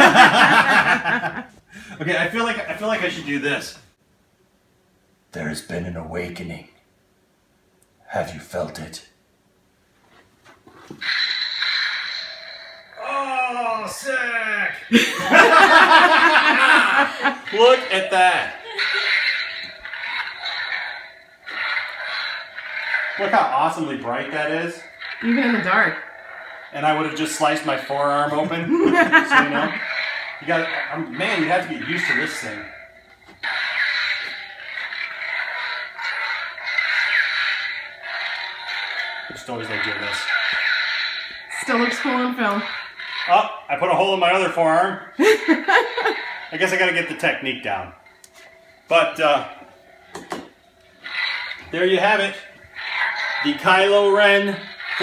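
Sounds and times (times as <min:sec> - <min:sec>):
toy lightsaber ignition crackling: 0:11.0 - 0:48.9, 0:49.9 - 0:55.0.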